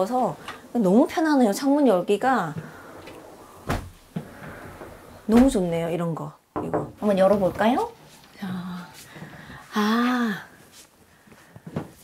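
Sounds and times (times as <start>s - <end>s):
window sash sliding: 2.6s - 5.7s.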